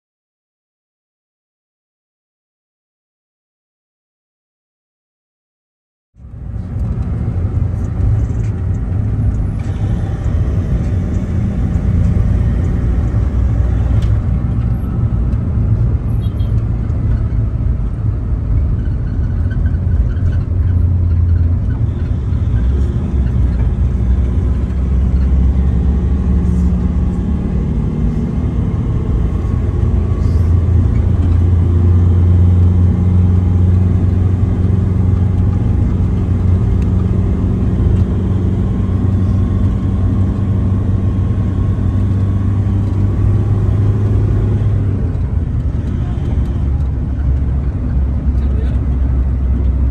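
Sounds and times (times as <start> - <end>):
van engine and road rumble: 6.2 - 49.9.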